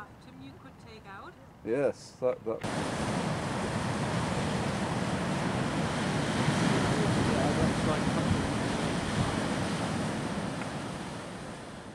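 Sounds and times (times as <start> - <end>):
sea waves breaking over rocks: 2.6 - 11.9.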